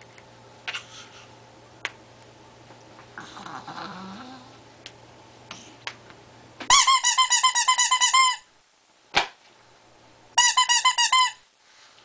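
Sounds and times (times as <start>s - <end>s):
rubber squeeze toy squeaking: 6.7s - 8.5s, 10.4s - 11.4s.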